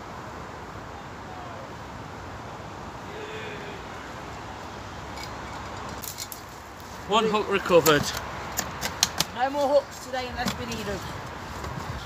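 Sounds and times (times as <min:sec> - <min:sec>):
wind noise on microphone: 0:10.3 - 0:12.0.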